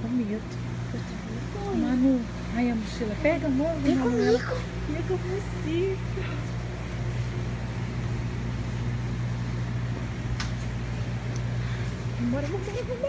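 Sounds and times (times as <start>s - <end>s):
low electrical machinery hum: 0.0s - 13.0s.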